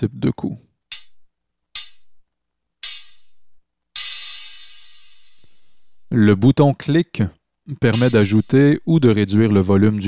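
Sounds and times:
synthesized hi-hat hits: 0.9 - 1.2, 1.8 - 2.2, 2.8 - 6.1, 8.0 - 8.9.

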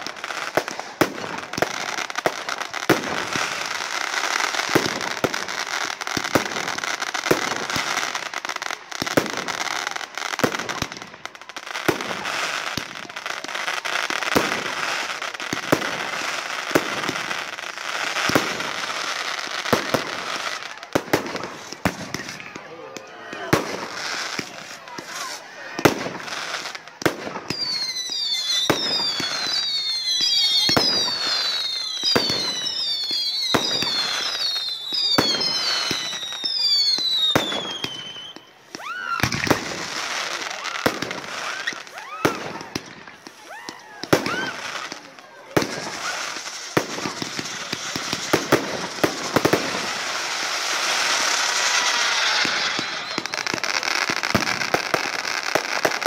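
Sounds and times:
fireworks bursting with sharp bangs: 0.0 - 56.0
whistling fireworks: 0.0 - 56.0.

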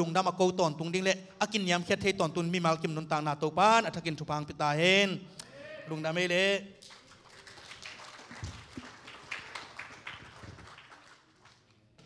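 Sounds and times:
congregation applauding: 6.8 - 12.0.

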